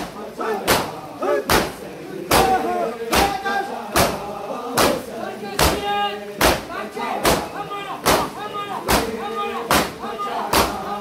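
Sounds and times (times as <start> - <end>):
crowd slapping chests: 0.0 - 11.0
voices chanting: 0.0 - 11.0.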